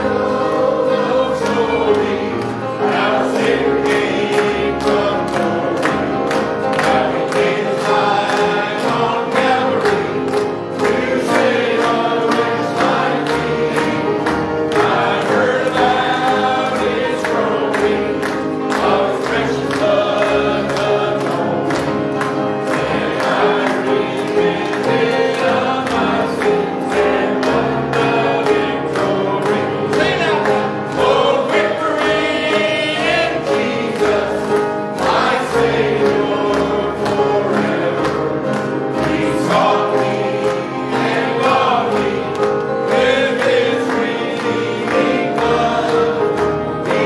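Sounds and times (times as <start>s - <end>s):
congregation singing a hymn: 0.0s - 47.0s.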